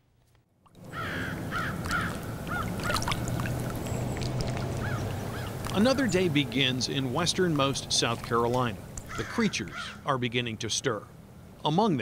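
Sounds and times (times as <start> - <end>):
birds calling: 0.8 - 11.6.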